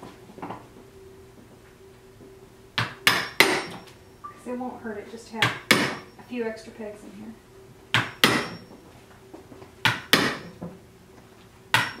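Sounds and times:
hammer striking punch: 0:02.8 - 0:03.8, 0:05.4 - 0:06.1, 0:07.9 - 0:08.6, 0:09.8 - 0:10.5, 0:11.7 - 0:12.0.

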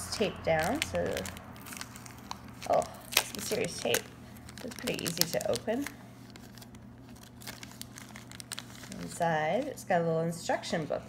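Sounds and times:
plastic packet crinkling: 0:00.0 - 0:09.9.

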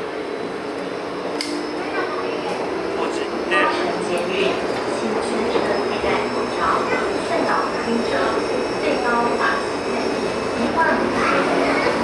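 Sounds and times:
metro train rumble and hiss: 0:00.0 - 0:12.0
voices: 0:01.5 - 0:12.0.

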